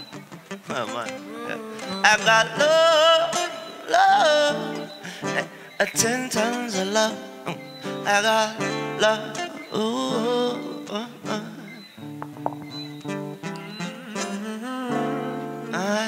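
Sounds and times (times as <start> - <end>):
acoustic guitar: 0.0 - 16.0.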